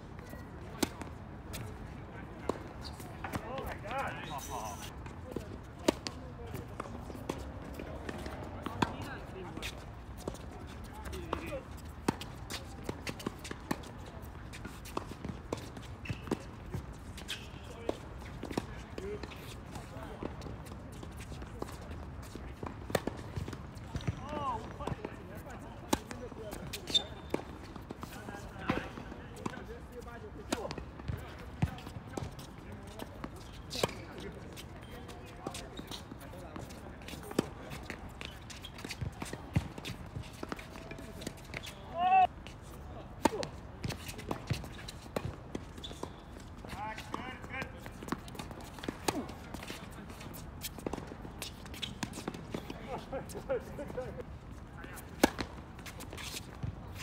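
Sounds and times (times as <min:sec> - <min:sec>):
footsteps on court: 0:00.2 - 0:57.0
tennis balls bouncing on hard court: 0:05.0 - 0:25.1, 0:30.4 - 0:42.1, 0:43.2 - 0:54.0, 0:54.9 - 0:56.9
tennis balls struck by rackets: 0:55.0 - 0:56.8.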